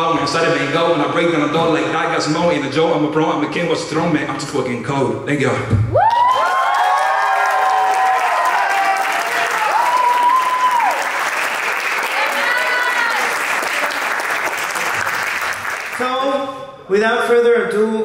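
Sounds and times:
crowd cheering and whooping: 5.9 - 14.2
audience applauding: 6.0 - 16.3.

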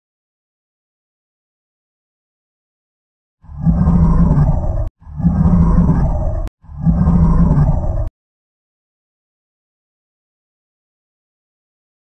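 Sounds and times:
deep growling monster roar: 3.4 - 8.1.

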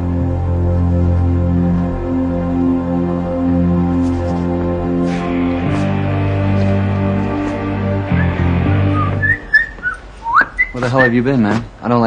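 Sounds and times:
low background music: 0.0 - 12.0
person whistling: 8.2 - 11.2.

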